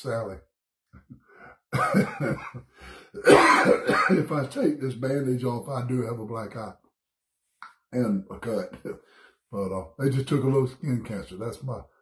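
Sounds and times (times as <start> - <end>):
man clearing his throat: 1.8 - 4.5
man coughing: 1.8 - 4.6.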